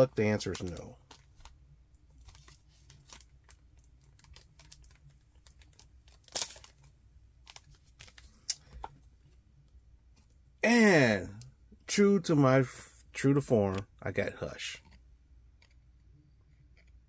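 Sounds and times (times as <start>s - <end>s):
packaging crinkling and clicking: 0.4s - 1.6s, 2.2s - 9.0s.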